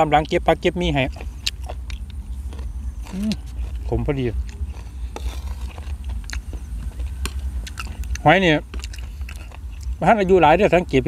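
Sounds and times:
crunchy chewing: 0:00.0 - 0:11.0
steady low rumble: 0:00.0 - 0:11.0.

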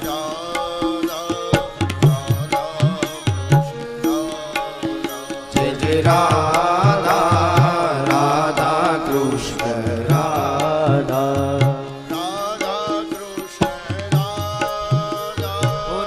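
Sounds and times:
harmonium: 0:00.0 - 0:16.0
man singing devotional song: 0:00.0 - 0:16.0
tabla drum rhythm: 0:00.0 - 0:16.0.

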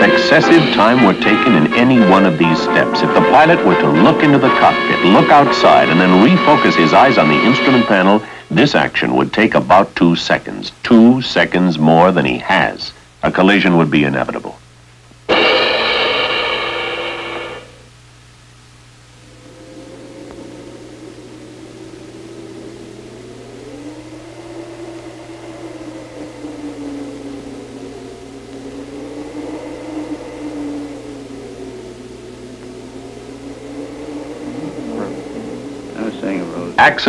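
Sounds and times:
wavering tone: 0:00.0 - 0:08.3, 0:15.3 - 0:17.8, 0:19.1 - 0:37.0
loud blaring tone: 0:00.0 - 0:08.4, 0:15.3 - 0:17.9, 0:19.2 - 0:37.0
low hum: 0:15.2 - 0:37.0.

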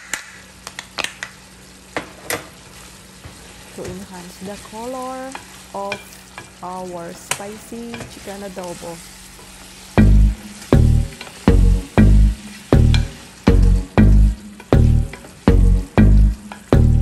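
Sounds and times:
chicken sizzling in a pan: 0:00.0 - 0:17.0
spatula stirring in a pan: 0:02.8 - 0:11.5
music with heavy bass beat: 0:10.0 - 0:17.0.

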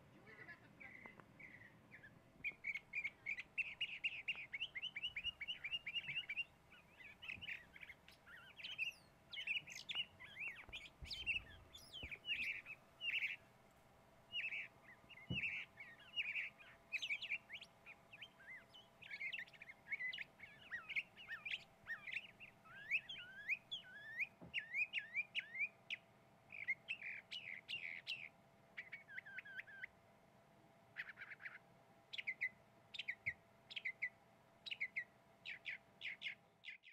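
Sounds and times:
small birds chirping: 0:00.0 - 0:30.0, 0:30.8 - 0:36.9.

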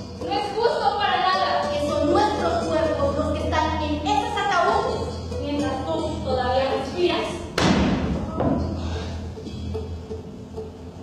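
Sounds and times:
thuds on a stage with echo: 0:07.5 - 0:08.7.

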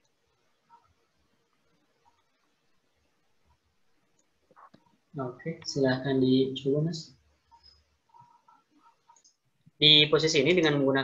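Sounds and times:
computer mouse clicks: 0:04.1 - 0:05.0, 0:07.5 - 0:09.5
man speaking: 0:05.2 - 0:07.2, 0:09.8 - 0:11.0.

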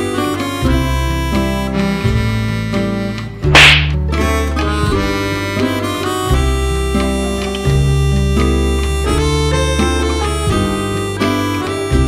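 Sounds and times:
guitar and harmonica music: 0:00.0 - 0:12.0
sharp slap-like hit: 0:03.6 - 0:04.0.

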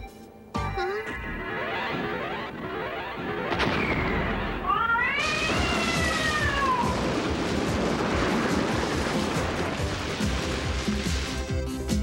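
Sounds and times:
background music: 0:00.0 - 0:02.0, 0:05.9 - 0:12.0
cat-like yowl: 0:04.7 - 0:07.1.

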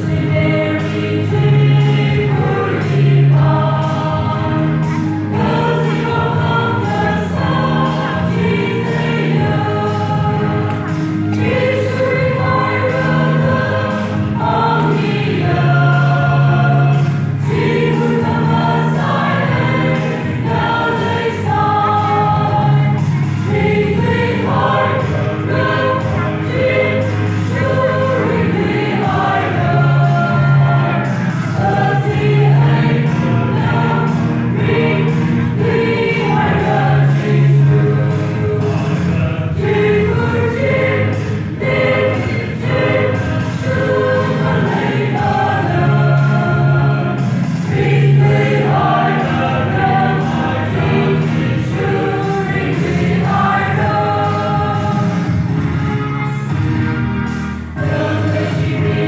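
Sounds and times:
choir singing a hymn: 0:00.0 - 0:57.0, 0:57.8 - 0:59.0.

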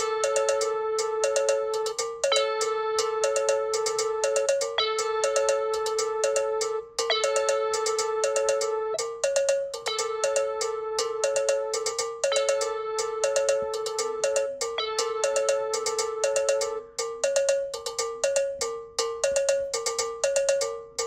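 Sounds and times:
electronic cowbell pattern: 0:00.0 - 0:21.0.

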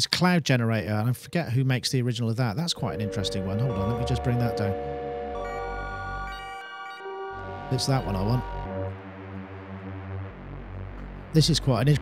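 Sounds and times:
electronic synthesizer drone: 0:02.8 - 0:12.0.

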